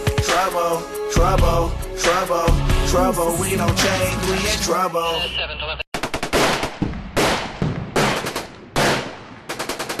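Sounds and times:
rapid automatic gunfire: 0:06.0 - 0:10.0.

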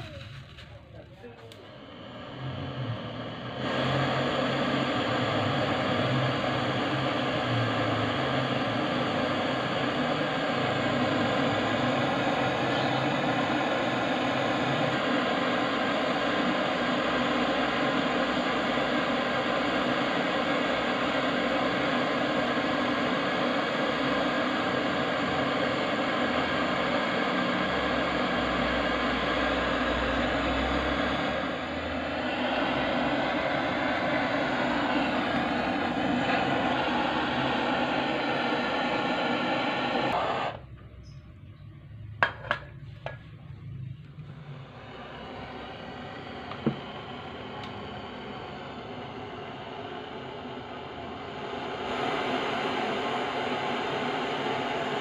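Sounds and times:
gas torch flame hissing: 0:00.0 - 0:41.2, 0:42.2 - 0:55.0.

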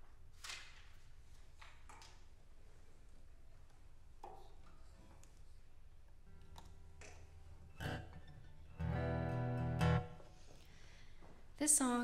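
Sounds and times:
acoustic guitar strummed: 0:07.6 - 0:10.4.

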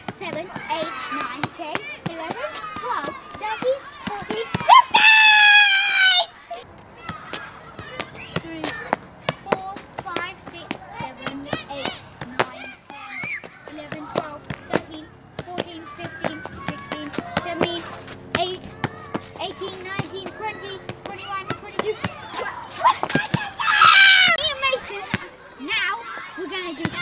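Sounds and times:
children's voices: 0:00.0 - 0:27.0.

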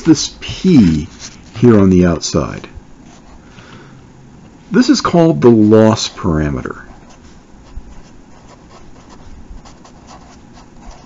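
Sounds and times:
marker scratching on paper: 0:06.9 - 0:11.0.

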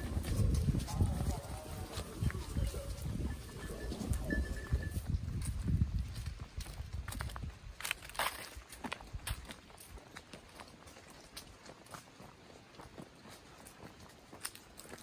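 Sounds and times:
footsteps crunching on dry leaves: 0:00.0 - 0:15.0.

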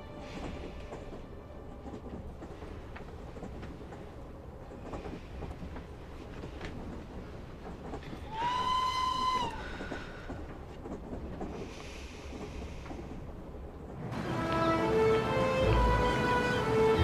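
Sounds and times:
train rumble: 0:00.0 - 0:17.0
train whistle: 0:08.3 - 0:09.6, 0:14.1 - 0:17.0
music: 0:14.2 - 0:17.0.

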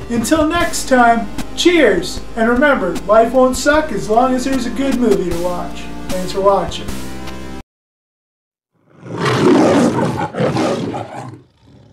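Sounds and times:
lion roaring: 0:08.9 - 0:11.9.

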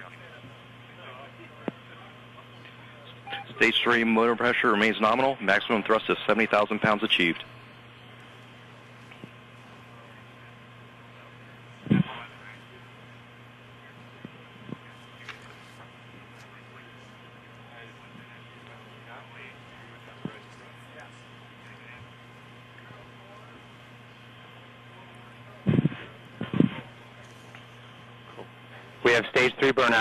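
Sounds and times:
faint radio hum and hiss: 0:00.0 - 0:30.0.

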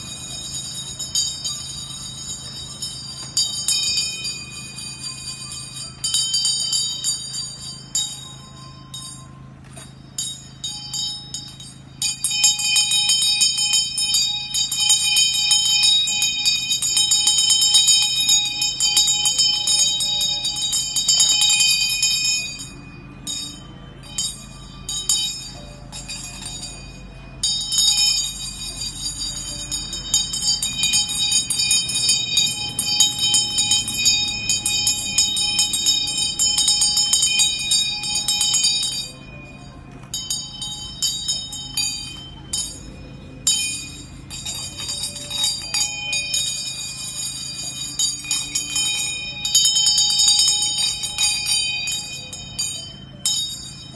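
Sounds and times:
handbell ringing: 0:00.0 - 0:53.9.

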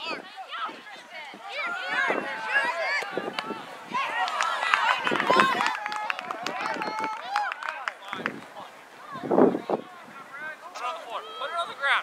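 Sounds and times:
children and adults shouting: 0:00.0 - 0:07.8.

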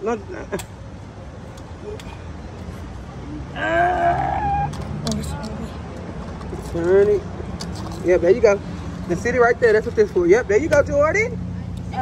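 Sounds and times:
high-pitched wordless vocal cry: 0:03.5 - 0:04.8.

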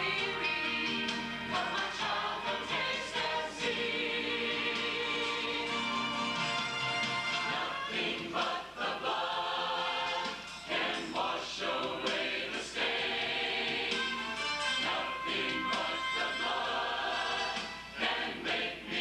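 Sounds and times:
church choir singing: 0:00.0 - 0:06.4, 0:07.4 - 0:19.0.

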